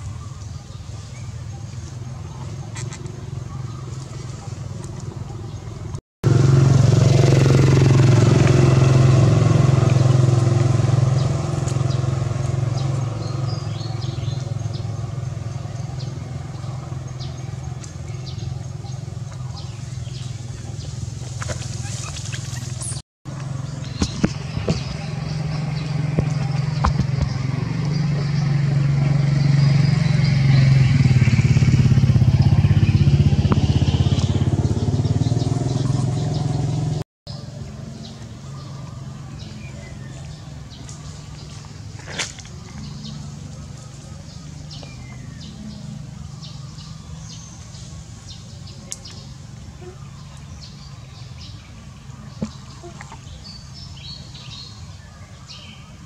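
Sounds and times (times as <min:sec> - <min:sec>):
motor engine running: 0:01.4 - 0:55.0.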